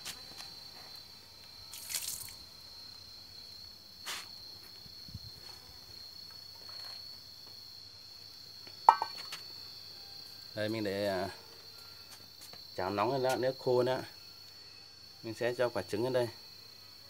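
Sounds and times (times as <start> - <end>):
high-pitched insect buzz: 0.0 - 17.0
water splashing from a pan: 1.7 - 2.4, 8.9 - 9.2
metal pan clanking on stone: 8.9 - 9.2
faint knock: 8.9 - 9.3.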